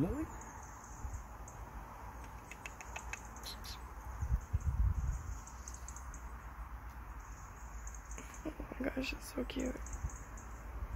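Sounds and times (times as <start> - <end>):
bird chirps: 0.0 - 10.8.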